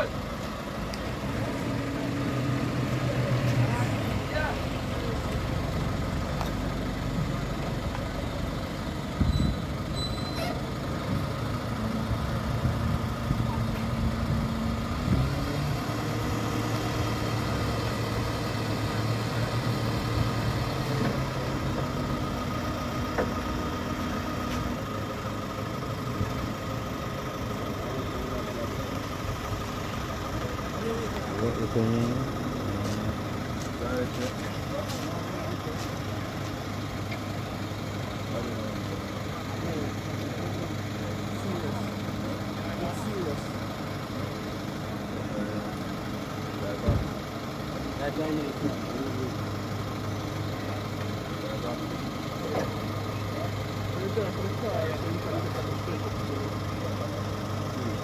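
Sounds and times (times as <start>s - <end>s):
people talking: 0.0s - 0.3s, 2.8s - 8.2s, 26.1s - 49.6s, 50.4s - 58.0s
truck engine idling: 0.0s - 58.0s.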